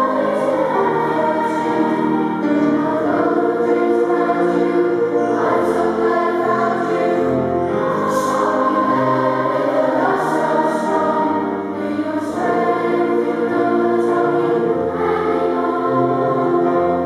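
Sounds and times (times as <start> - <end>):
boys' choir singing: 0.0 - 17.0.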